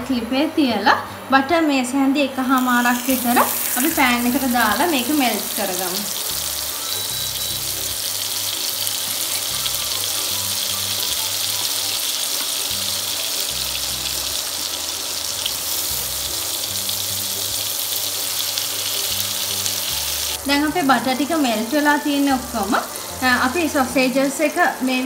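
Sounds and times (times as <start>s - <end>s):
soft background music: 0.0s - 25.0s
butter sizzling in a frying pan: 2.6s - 25.0s.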